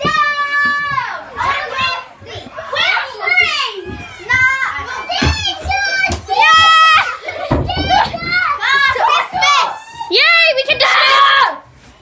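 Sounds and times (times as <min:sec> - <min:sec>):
children shouting and squealing: 0:00.0 - 0:12.0.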